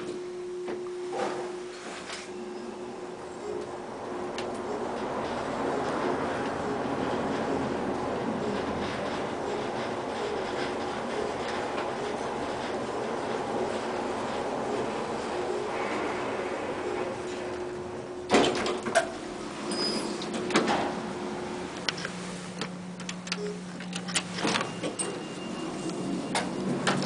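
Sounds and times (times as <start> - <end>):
elevator clunks: 0.0 - 27.0
elevator rushing hum: 0.0 - 27.0
elevator doors sliding open: 1.1 - 27.0.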